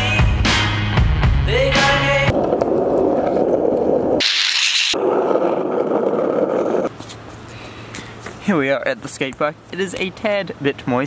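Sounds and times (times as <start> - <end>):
music with singing: 0.0 - 2.3
skateboard wheels rolling on concrete: 1.8 - 10.1.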